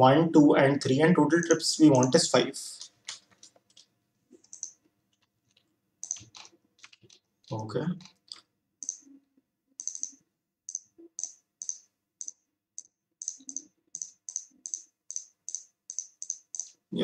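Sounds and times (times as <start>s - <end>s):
computer mouse clicking: 2.8s - 9.1s, 9.8s - 16.8s.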